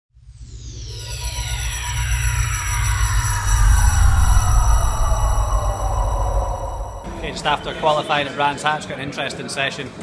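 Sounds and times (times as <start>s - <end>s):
deep pulsing bass rumble: 0.2s - 7.9s
falling multi-tone sweep: 0.2s - 8.4s.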